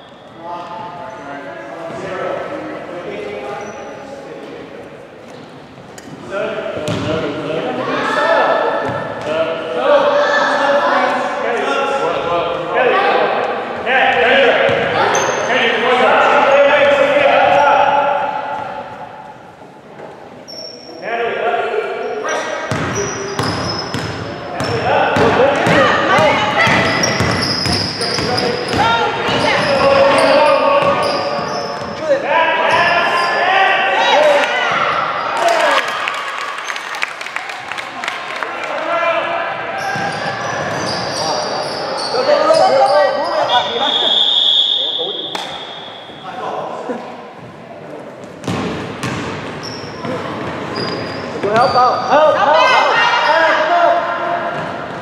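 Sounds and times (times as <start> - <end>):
players calling out: 22.0 - 35.9
basketball bouncing on wooden floor: 22.7 - 29.5, 48.4 - 49.4.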